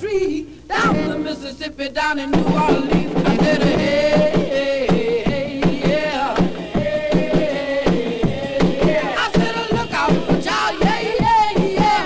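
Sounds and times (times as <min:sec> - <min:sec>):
rock and roll record playing: 0:00.7 - 0:12.0.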